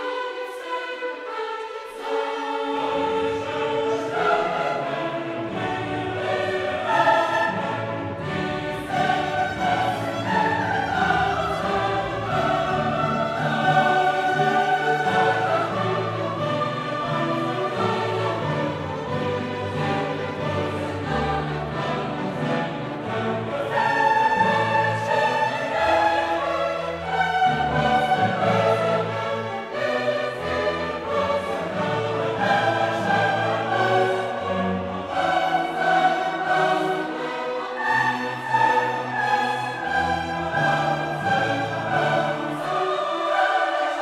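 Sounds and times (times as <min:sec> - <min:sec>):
choir singing held notes: 0:00.0 - 0:44.0
instrumental accompaniment: 0:00.0 - 0:44.0
orchestral music: 0:00.0 - 0:44.0.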